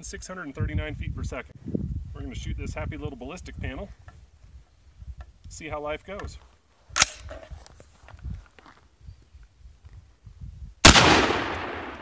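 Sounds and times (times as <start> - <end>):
rifle shot with echo: 7.0 - 7.2, 10.8 - 12.0.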